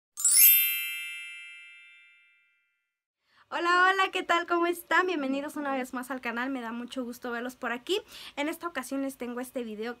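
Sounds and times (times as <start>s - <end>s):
bright shimmering chime: 0.2s - 2.7s.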